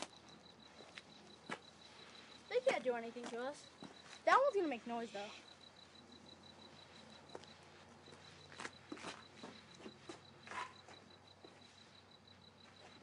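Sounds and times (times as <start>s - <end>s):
cricket chirping: 0.0s - 13.0s.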